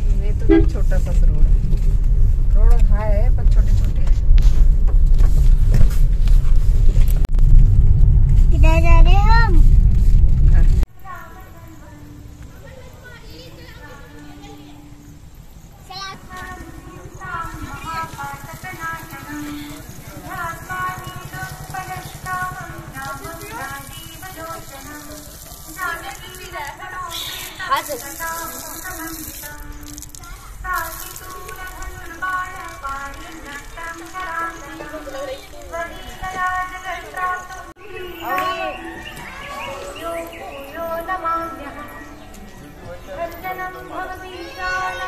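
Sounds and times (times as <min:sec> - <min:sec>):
car driving rumble: 0:00.0 - 0:10.9.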